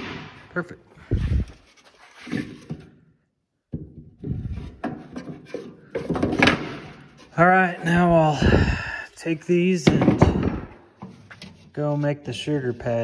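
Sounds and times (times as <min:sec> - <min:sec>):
wooden box knocks and thumps: 0:03.7 - 0:07.0, 0:09.8 - 0:11.1.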